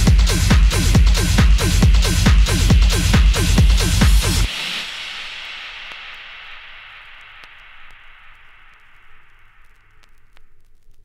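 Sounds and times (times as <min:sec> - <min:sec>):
vinyl record hiss: 0:00.0 - 0:11.0
faint vinyl crackle clicks: 0:05.8 - 0:11.0.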